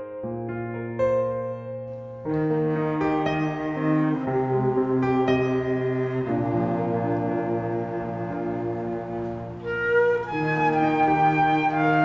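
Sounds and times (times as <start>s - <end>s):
cello bowing low notes: 2.2s - 12.0s.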